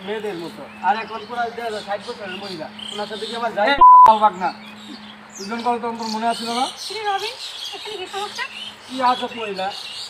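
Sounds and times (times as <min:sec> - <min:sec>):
people talking animatedly: 0:00.0 - 0:09.8.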